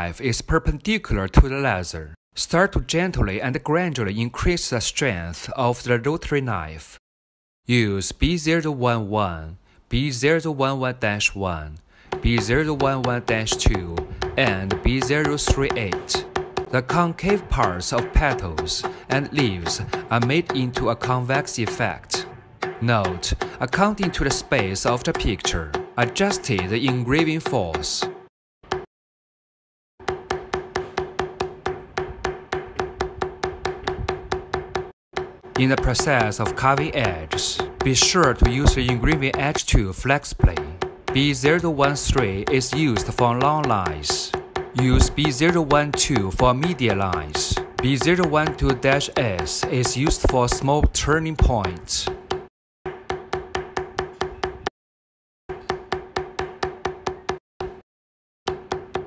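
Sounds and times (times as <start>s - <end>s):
mallet striking metal tool: 12.1s - 28.9s, 30.0s - 54.7s, 55.5s - 57.8s, 58.5s - 59.0s.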